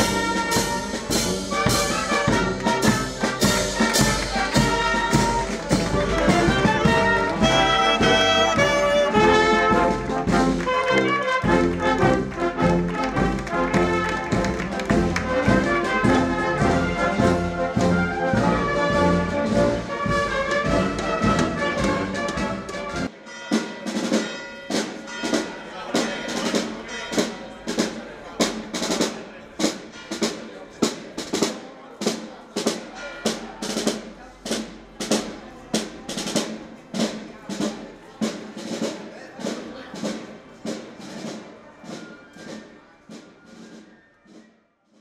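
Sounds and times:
faint brass: 0.0s - 23.1s
marching drums beating: 0.0s - 44.4s.

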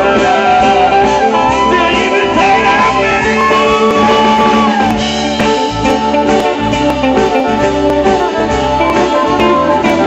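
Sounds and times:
bluegrass band jamming: 0.0s - 10.0s.

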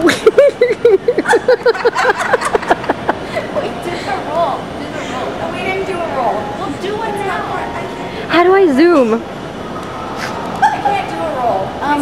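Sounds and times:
women laughing: 0.0s - 4.2s.

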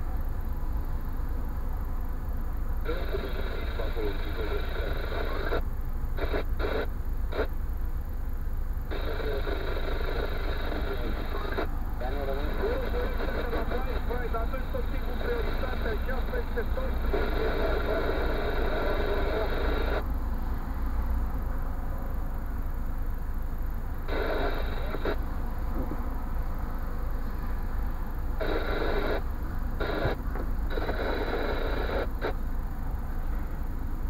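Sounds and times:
indistinct voices talking: 10.5s - 20.0s.

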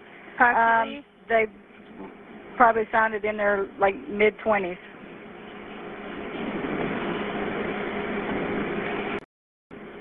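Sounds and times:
faint low hum: 0.0s - 9.2s.

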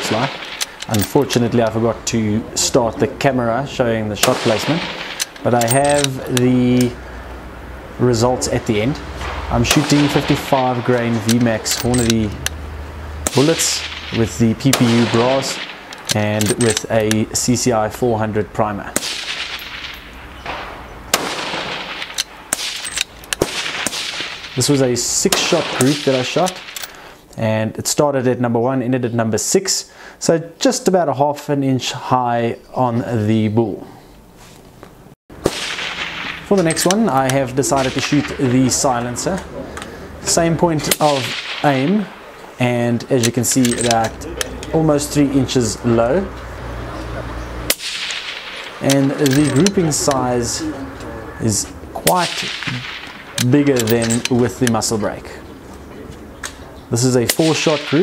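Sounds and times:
light rifle clicks: 0.3s - 1.3s
rifle shot cracking with echo: 4.2s - 5.4s, 13.2s - 16.0s, 19.0s - 22.8s, 23.4s - 24.6s, 35.4s - 38.4s, 40.9s - 42.4s, 47.7s - 48.9s
suppressed rifle shot: 19.0s - 24.6s, 35.4s - 36.5s, 47.7s - 48.8s.

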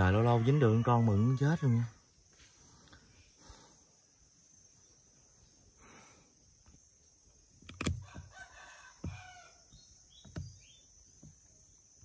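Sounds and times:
rooster crowing: 0.0s - 2.1s, 8.0s - 9.8s.

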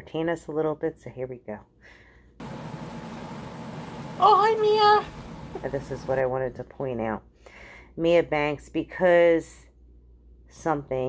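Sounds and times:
background hiss: 2.4s - 6.3s
low hum: 2.4s - 6.6s.

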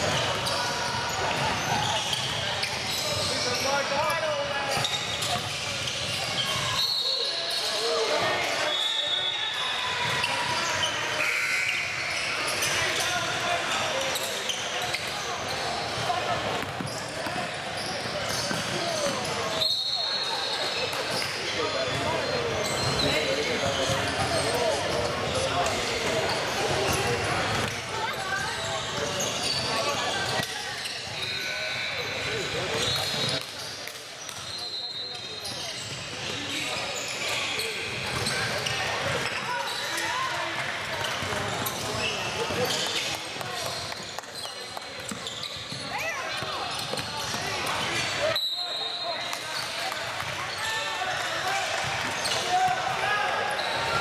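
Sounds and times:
sneakers squeaking: 0.0s - 54.0s.

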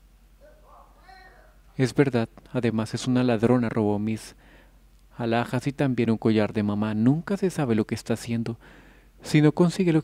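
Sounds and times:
person speaking: 0.4s - 4.4s.

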